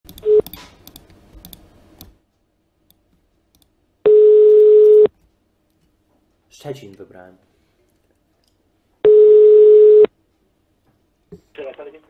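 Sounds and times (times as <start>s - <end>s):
telephone ringback tone: 4.1s - 5.1s, 9.0s - 10.1s.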